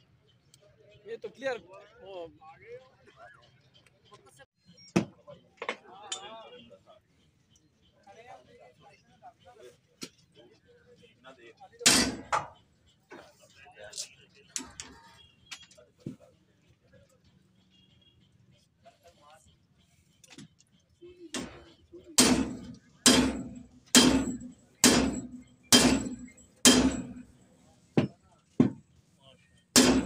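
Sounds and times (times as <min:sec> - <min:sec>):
hammer blows on steel: 0:22.2 - 0:27.4, 0:29.7 - 0:30.0.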